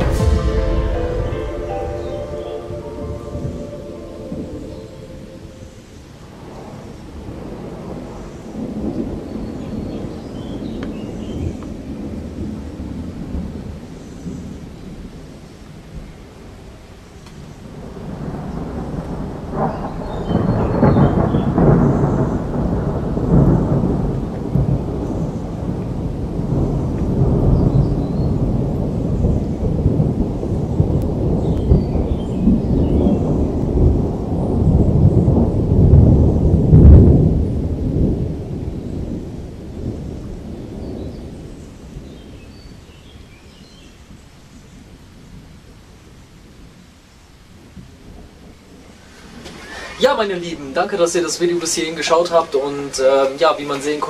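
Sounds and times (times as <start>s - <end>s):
rolling thunder: 0.0s - 16.6s, 17.6s - 43.5s.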